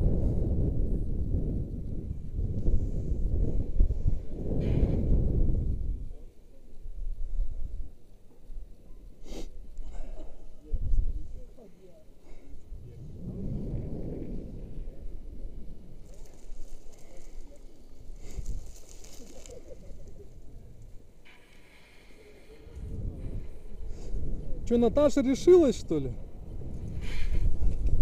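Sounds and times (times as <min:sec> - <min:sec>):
wind rushing over microphone: 0:00.0 - 0:08.0, 0:09.5 - 0:28.0.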